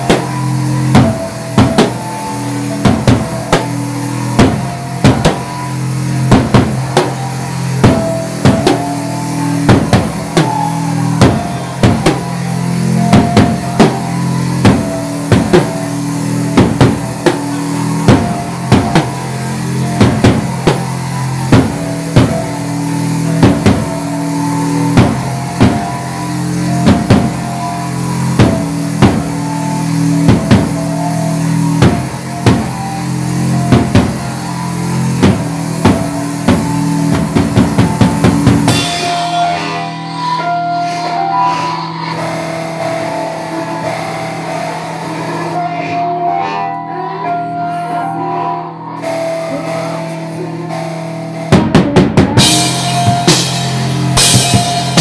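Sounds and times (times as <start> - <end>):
live rock band playing loud: 0.0 - 45.8, 49.0 - 55.0
drum kit pounding beat: 0.0 - 46.0, 49.0 - 55.0.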